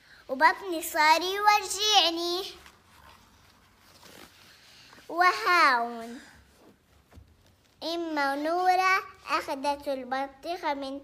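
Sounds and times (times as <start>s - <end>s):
book page turning: 2.6s - 5.1s.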